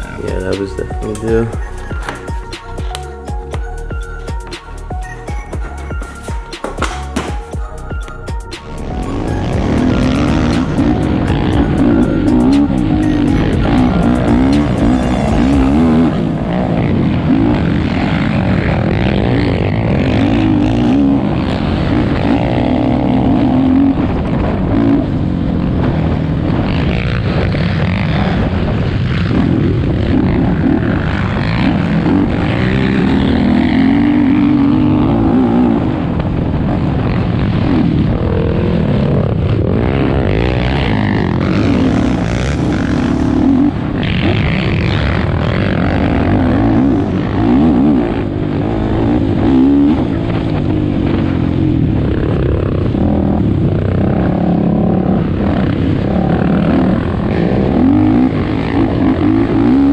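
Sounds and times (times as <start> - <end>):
other quad engines: 0.0 - 59.9
wind: 0.0 - 59.9
quad engine revving: 8.6 - 59.9.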